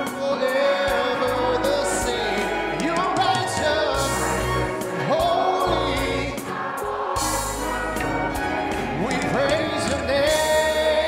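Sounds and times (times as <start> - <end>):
choir singing gospel song: 0.0 - 11.0
instrumental ensemble accompaniment: 0.0 - 11.0.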